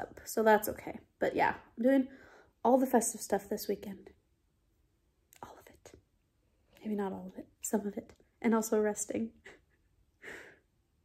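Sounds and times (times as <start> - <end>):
woman breathing softly: 2.1 - 2.6, 10.2 - 10.8.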